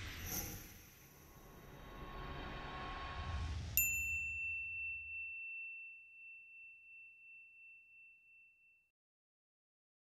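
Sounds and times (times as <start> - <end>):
bright ringing ding: 3.8 - 8.9.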